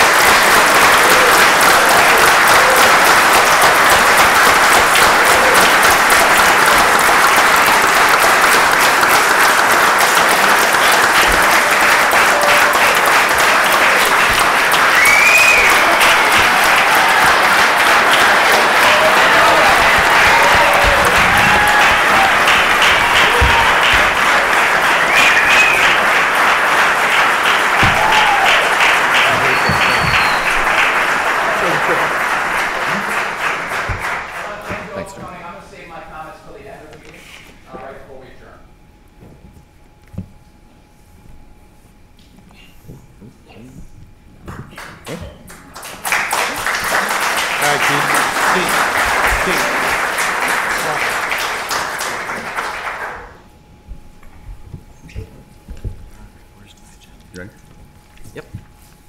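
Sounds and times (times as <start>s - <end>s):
audience applauding: 0.0s - 35.2s, 44.7s - 53.5s.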